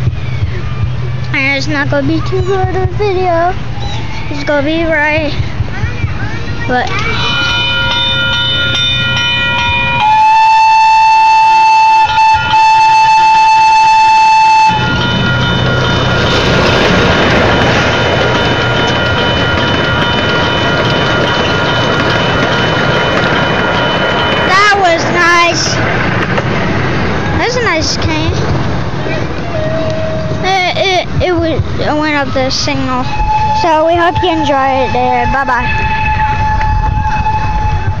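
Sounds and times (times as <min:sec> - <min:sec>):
train cars rumbling: 0:00.0 - 0:38.0
steady high-pitched tone: 0:06.7 - 0:25.8
railroad crossing bell ringing: 0:06.7 - 0:26.2, 0:32.1 - 0:38.0
train whistle blowing: 0:09.9 - 0:15.4, 0:29.4 - 0:30.4, 0:33.0 - 0:38.0.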